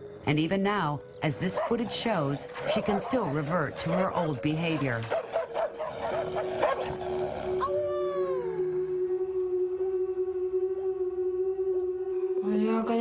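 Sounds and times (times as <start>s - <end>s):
woman howling: 7.5s - 9.9s.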